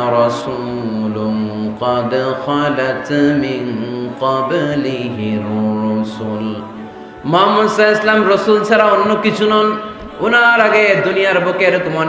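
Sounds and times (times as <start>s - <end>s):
man chanting over loudspeakers: 0.0s - 12.0s.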